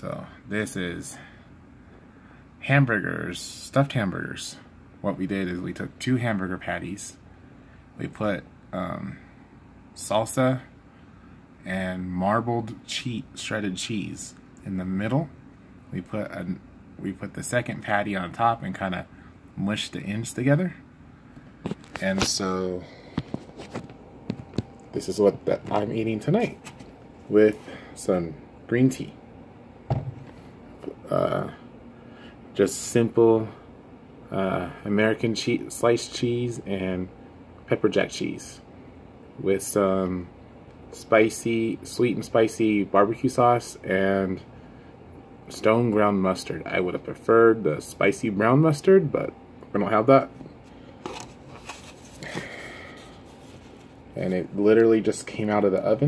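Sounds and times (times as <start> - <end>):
hand handling a phone: 21.5 - 22.4, 23.1 - 27.3, 29.9 - 30.6, 50.6 - 54.0.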